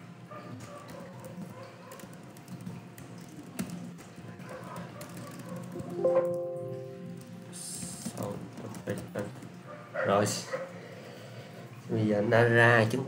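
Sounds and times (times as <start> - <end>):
computer keyboard tapping: 4.5 - 7.4
ringing multi-pitch tone: 5.9 - 7.4.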